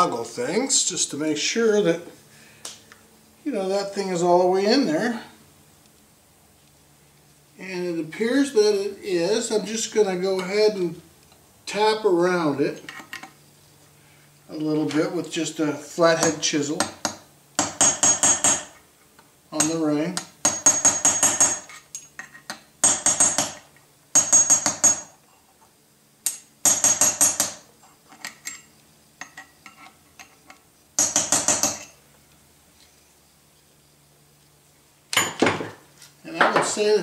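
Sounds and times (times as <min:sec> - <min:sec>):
hammer tapping metal chisel: 0:19.6 - 0:23.6, 0:24.2 - 0:25.1, 0:31.0 - 0:32.0.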